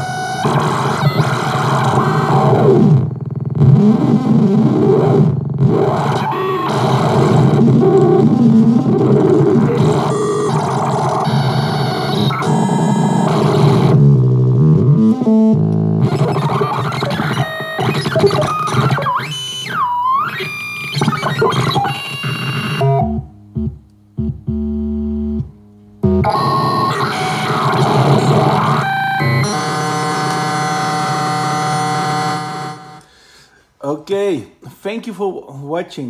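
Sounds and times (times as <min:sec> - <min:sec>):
harsh glitch synthesizer noises: 0:00.0 - 0:25.4, 0:26.0 - 0:33.0
swooping synth tone: 0:00.0 - 0:33.0.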